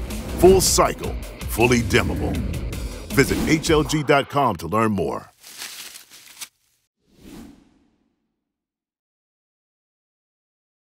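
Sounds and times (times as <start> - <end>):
whoosh sound effect: 1.6 - 4.6.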